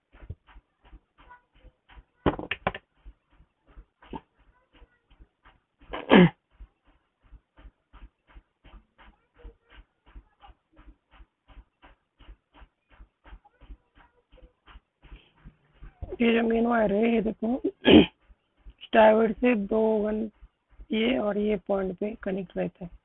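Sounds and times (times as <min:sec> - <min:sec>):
animal panting: 0:00.0 - 0:23.0.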